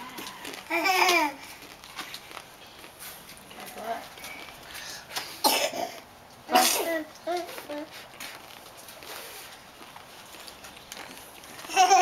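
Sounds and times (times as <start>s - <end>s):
toddler babble: 0.7s - 1.5s, 6.5s - 7.9s.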